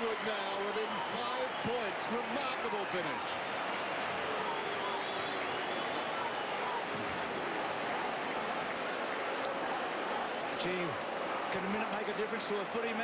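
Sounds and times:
stadium crowd cheering: 0.0s - 13.0s.

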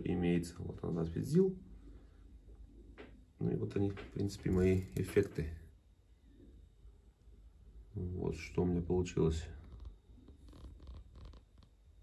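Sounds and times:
faint low room rumble: 0.0s - 12.0s
soft rustles of handling: 0.8s - 5.5s.

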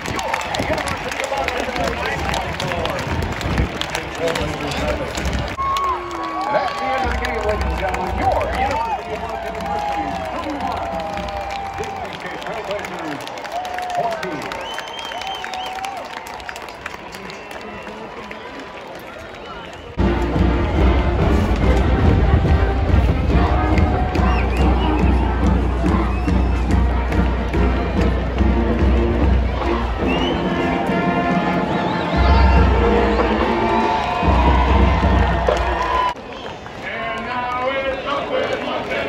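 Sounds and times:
stadium crowd cheering: 0.0s - 39.0s.

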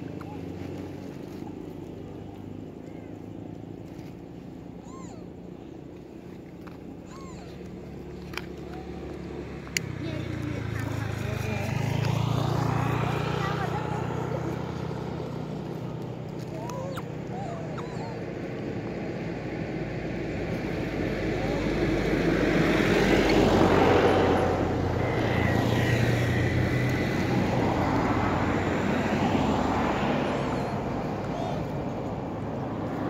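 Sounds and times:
passing vehicle engine: 0.0s - 33.0s
faint squeaky calls: 16.5s - 18.2s.

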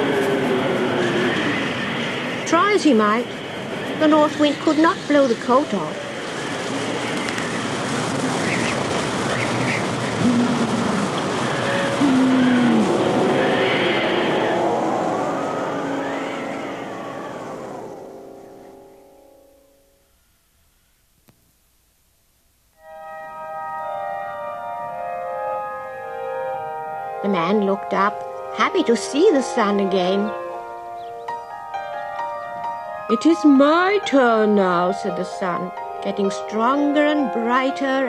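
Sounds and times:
music of sustained chords: 0.0s - 20.9s, 22.8s - 38.0s
cartoon wind gust: 8.0s - 18.1s.

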